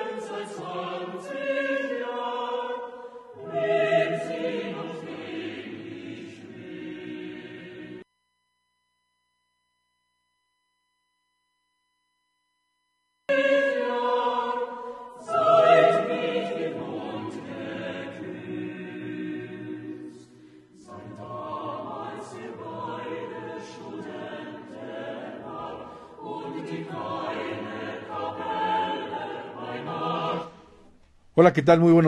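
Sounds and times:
choir singing held chords: 0.0 - 8.0, 13.3 - 31.0.

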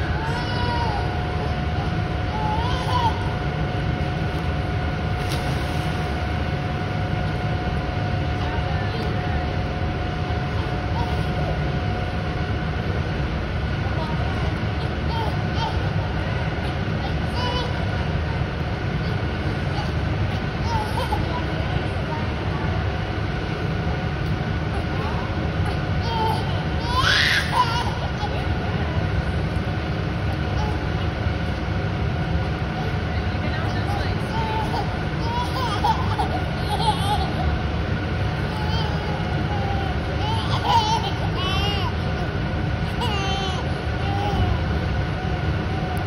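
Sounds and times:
faint high hum: 0.0 - 46.0
indoor pool hall roar: 0.0 - 46.0.

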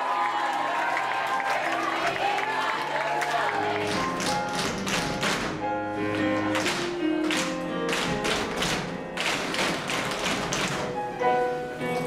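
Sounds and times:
show tune music: 1.7 - 12.0
tap shoes on stage floor: 3.8 - 5.6, 6.2 - 11.0.

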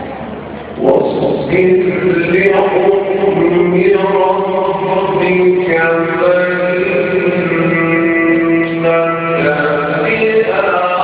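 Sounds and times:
man chanting melodically: 0.8 - 11.0.

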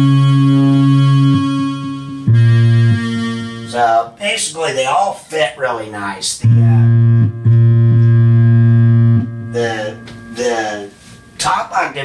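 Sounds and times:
buzzy synthesizer bass note: 0.0 - 3.8, 6.4 - 11.4.

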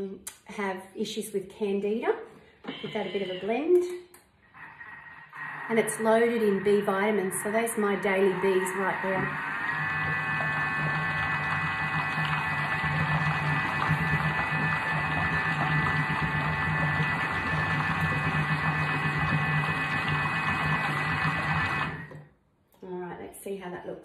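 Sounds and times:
food processor motor whining: 4.6 - 22.2.

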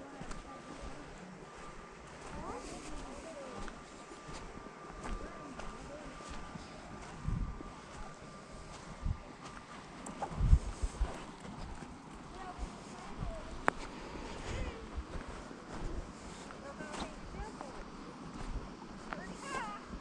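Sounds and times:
footsteps on dry grass: 0.1 - 19.8.

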